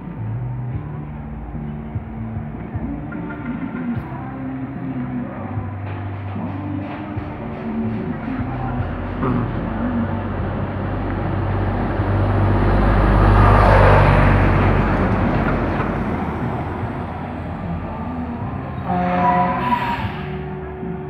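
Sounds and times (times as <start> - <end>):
vehicle passing: 0.0 - 21.0.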